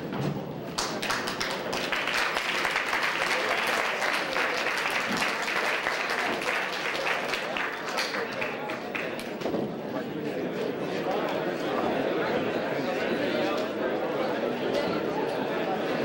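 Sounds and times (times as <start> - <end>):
crowd chatter: 0.0 - 16.0
people applauding: 0.7 - 9.4.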